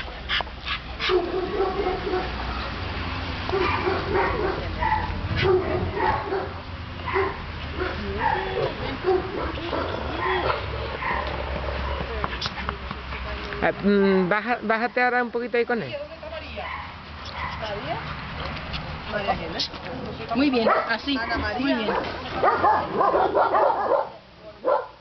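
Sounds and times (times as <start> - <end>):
dogs barking and yipping: 0.0 - 12.7, 16.6 - 25.0.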